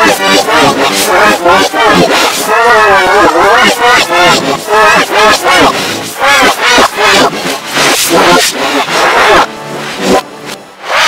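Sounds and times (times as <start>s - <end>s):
reversed distorted yelling: 0.0s - 11.0s.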